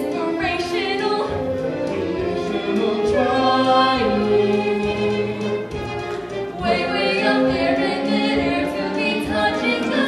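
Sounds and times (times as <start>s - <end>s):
instrumental accompaniment: 0.0s - 10.0s
voices singing held notes: 0.0s - 10.0s.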